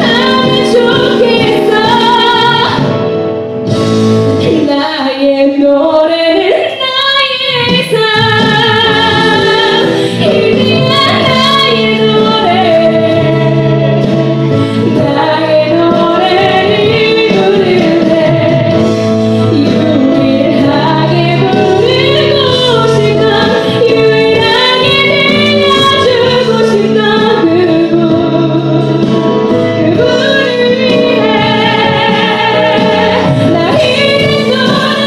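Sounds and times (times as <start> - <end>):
woman singing into microphone: 0.0 - 3.2, 4.4 - 35.0
instrumental accompaniment: 0.0 - 5.3, 6.7 - 35.0.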